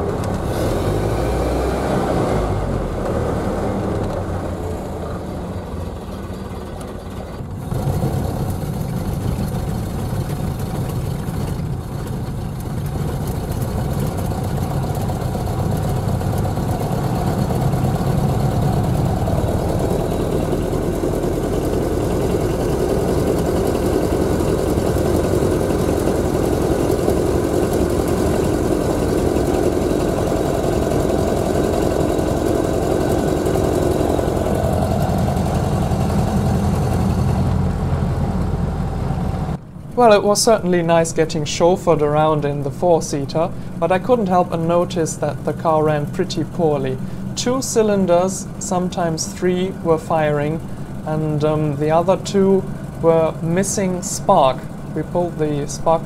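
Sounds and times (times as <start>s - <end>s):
car engine running: 0.0s - 40.2s, 41.3s - 56.0s
road noise: 0.0s - 56.0s.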